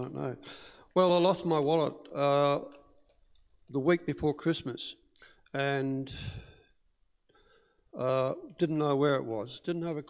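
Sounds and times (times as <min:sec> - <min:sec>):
intake of breath: 0:00.4 - 0:00.9, 0:06.1 - 0:06.7, 0:07.3 - 0:07.9.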